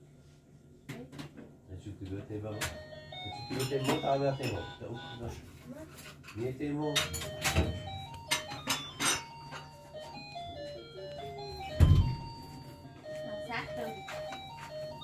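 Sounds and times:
electronic toy jingle beeps: 0:02.5 - 0:05.4, 0:06.8 - 0:15.0
loud thump: 0:11.8 - 0:12.3.

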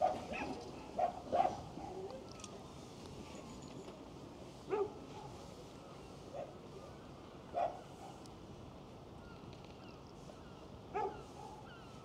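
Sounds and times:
dog barking: 0:00.0 - 0:02.0, 0:04.7 - 0:05.3, 0:07.6 - 0:08.2, 0:10.9 - 0:11.6
low crowd murmur: 0:00.0 - 0:08.6.

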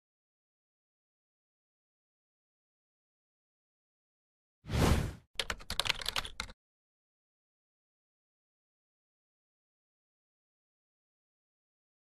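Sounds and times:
keyboard typing clicks: 0:05.4 - 0:06.5.

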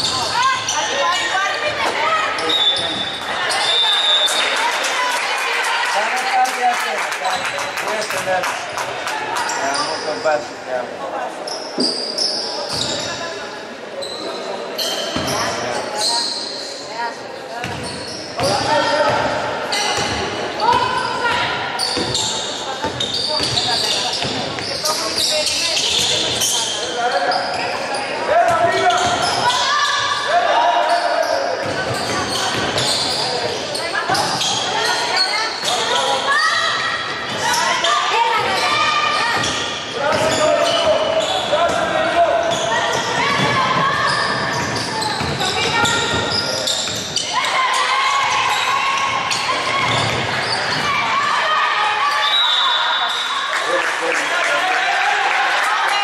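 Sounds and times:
basketball bouncing on wooden court: 0:17.6 - 0:19.3, 0:22.0 - 0:24.7, 0:42.5 - 0:47.1, 0:49.2 - 0:51.0.

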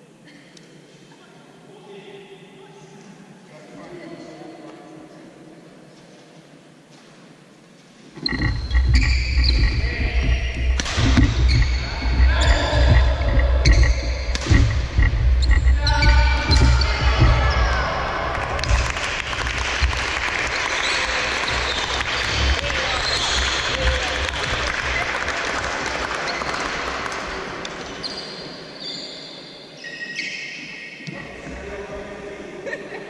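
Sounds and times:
shoes squeaking on court: 0:08.1 - 0:17.8, 0:20.8 - 0:24.6, 0:27.8 - 0:30.9
racket hitting shuttlecock: 0:10.6 - 0:13.0, 0:13.6 - 0:15.2
children clapping and cheering: 0:16.8 - 0:27.5.

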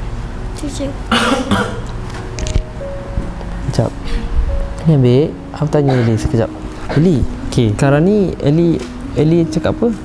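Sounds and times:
slow background music: 0:00.0 - 0:10.0
person coughing: 0:01.1 - 0:01.9, 0:05.9 - 0:06.2.

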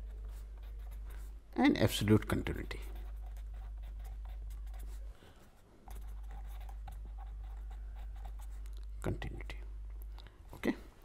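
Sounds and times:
pen scratching on paper: 0:00.0 - 0:01.3, 0:02.2 - 0:05.0, 0:05.8 - 0:08.6
low electrical hum: 0:00.0 - 0:11.0.

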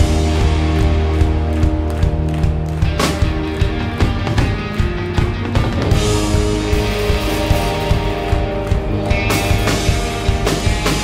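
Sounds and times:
live rock band playing: 0:00.0 - 0:11.0.

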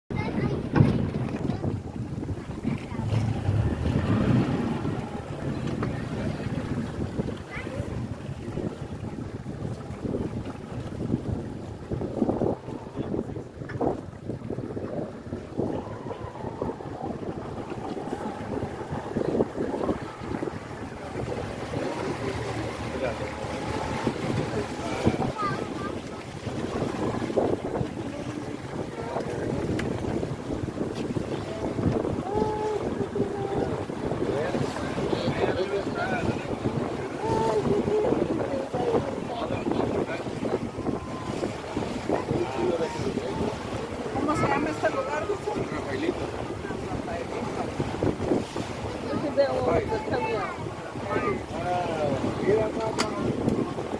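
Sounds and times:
water slapping against boat hull: 0:00.1 - 0:53.9
wind buffeting microphone: 0:00.1 - 0:53.9.

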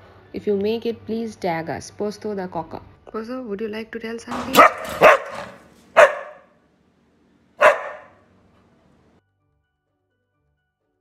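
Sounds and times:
dog barking: 0:04.4 - 0:06.6, 0:07.6 - 0:08.2.

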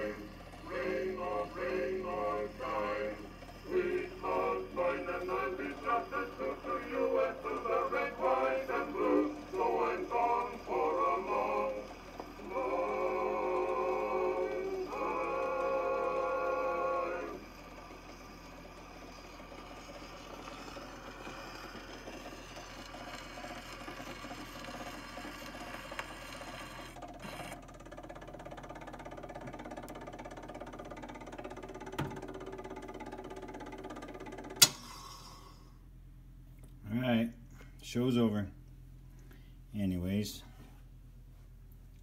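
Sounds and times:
male chorus singing on phonograph: 0:00.0 - 0:18.8
sharp click: 0:34.6 - 0:34.9.

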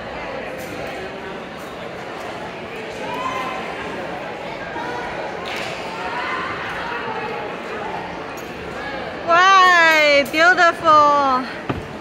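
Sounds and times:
background noise: 0:00.0 - 0:12.0.

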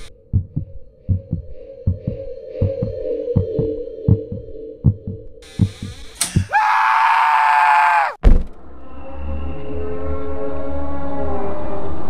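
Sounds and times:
fast heartbeat thumping: 0:00.3 - 0:06.5
man screaming: 0:06.4 - 0:08.2
low drone: 0:08.5 - 0:12.0.

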